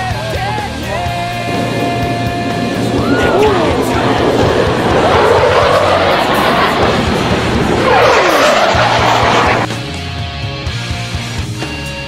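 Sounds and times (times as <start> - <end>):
rock music: 0.0 - 12.0
jet flying low past: 0.7 - 9.8.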